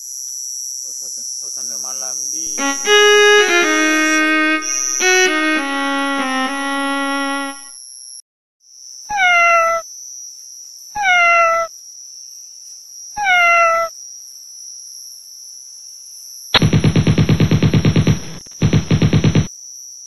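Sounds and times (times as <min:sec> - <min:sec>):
loud rhythmic rattling buzz: 0:02.5 - 0:07.6, 0:16.6 - 0:19.5
meow-like animal calls: 0:09.1 - 0:09.8, 0:11.0 - 0:11.7, 0:13.2 - 0:13.9.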